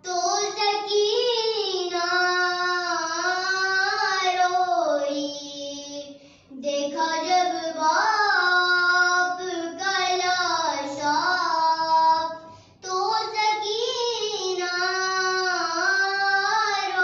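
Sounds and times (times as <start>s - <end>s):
girl singing unaccompanied: 0.0s - 17.0s.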